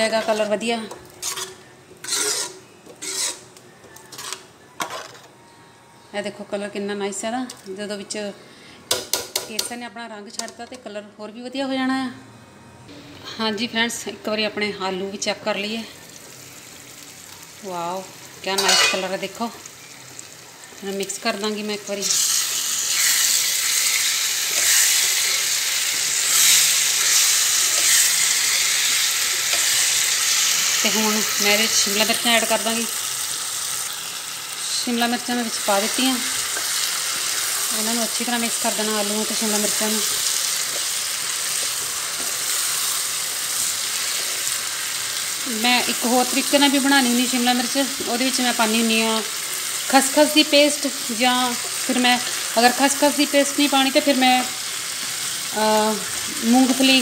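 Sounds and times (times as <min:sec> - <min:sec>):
potatoes sizzling in a pan: 0:00.0 - 0:04.4, 0:15.1 - 0:57.0
ladle scraping metal pot: 0:01.1 - 0:03.5, 0:04.1 - 0:05.3.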